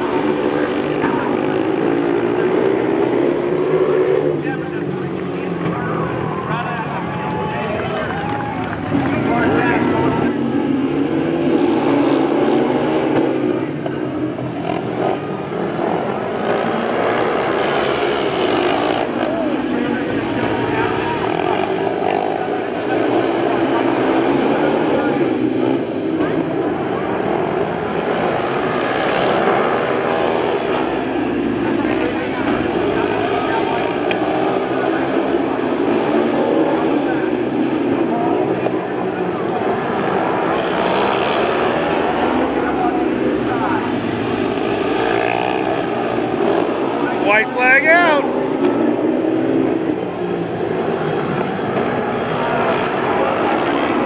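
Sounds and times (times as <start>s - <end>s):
motorcycle engines racing: 0.0s - 54.0s.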